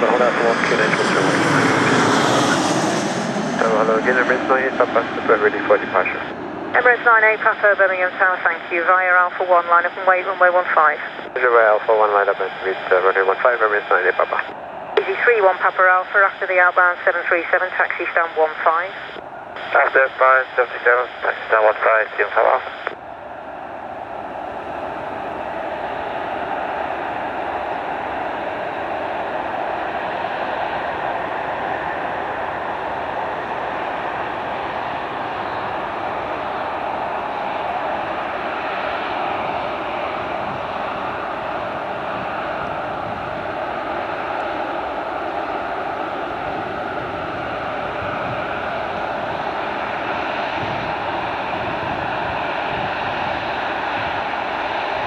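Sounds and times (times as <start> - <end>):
jet aircraft taxiing: 0.0 - 55.0.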